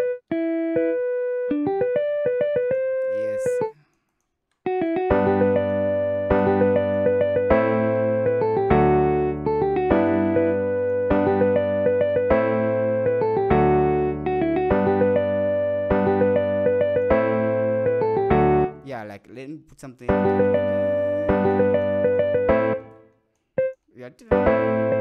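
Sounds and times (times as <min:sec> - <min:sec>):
electric piano melody: 0:00.0 - 0:03.7, 0:04.7 - 0:18.9, 0:20.1 - 0:25.0.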